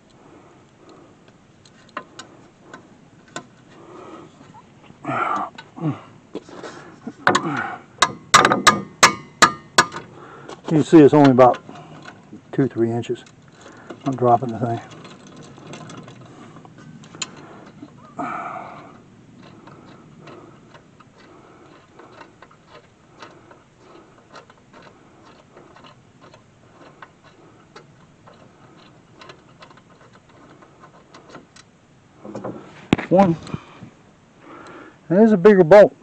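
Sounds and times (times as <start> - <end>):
ratchet wrench clicking: 7.3 - 10.1, 18.8 - 31.7.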